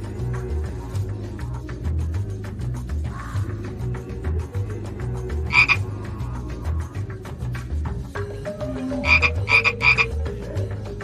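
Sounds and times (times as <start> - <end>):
music with pulsing bass: 0.0 - 11.0
frog croak: 5.5 - 5.9, 8.7 - 10.5.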